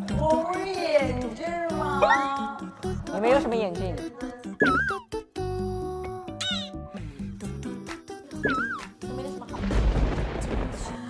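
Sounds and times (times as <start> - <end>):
light background music: 0.0 - 10.4.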